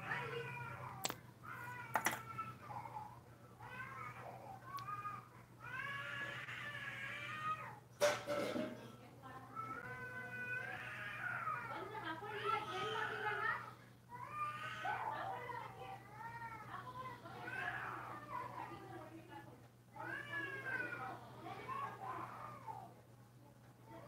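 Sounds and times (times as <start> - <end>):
sharp clicks: 1.9 - 2.3.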